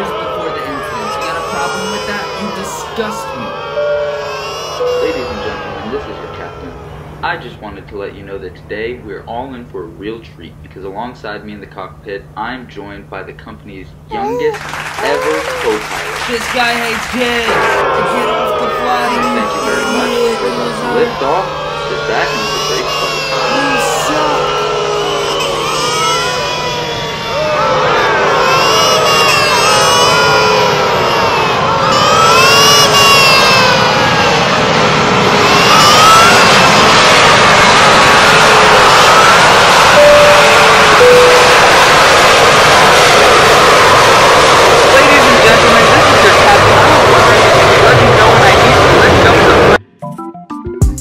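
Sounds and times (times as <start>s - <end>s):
high voices yelling: 0.0s - 9.4s, 14.1s - 49.8s
music: 3.6s - 6.0s, 40.0s - 41.5s, 49.8s - 51.0s
dense roar of noise: 5.2s - 11.1s, 14.6s - 49.8s.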